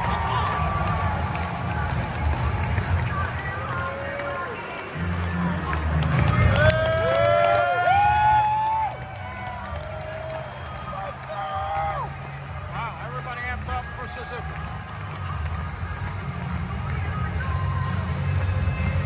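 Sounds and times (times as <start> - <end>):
entrance music over sound system: 0.0 - 19.0.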